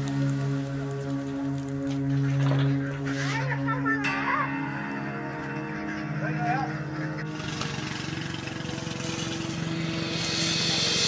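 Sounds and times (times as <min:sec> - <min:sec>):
engine running with even pulse: 0:06.9 - 0:11.0
hiss: 0:07.4 - 0:11.0.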